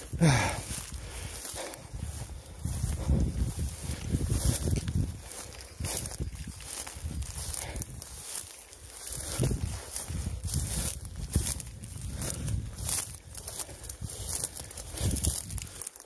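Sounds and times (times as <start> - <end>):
footsteps through dry grass: 0.0 - 16.0.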